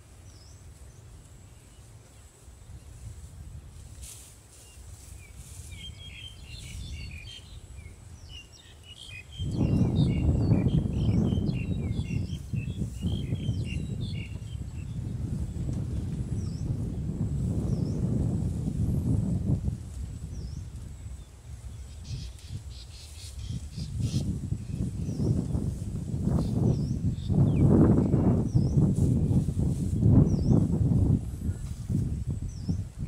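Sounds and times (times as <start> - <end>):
small birds chirping: 4.6 - 15.5, 20.2 - 28.9, 30.0 - 30.7, 31.4 - 32.9.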